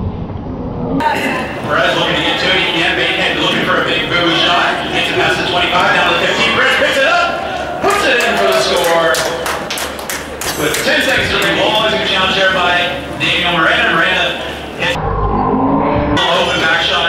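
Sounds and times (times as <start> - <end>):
man talking: 1.3 - 9.7, 10.5 - 15.0, 16.2 - 17.0.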